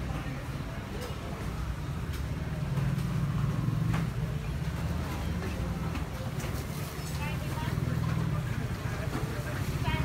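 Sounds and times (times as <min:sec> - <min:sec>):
faint market bustle: 0:00.0 - 0:10.0.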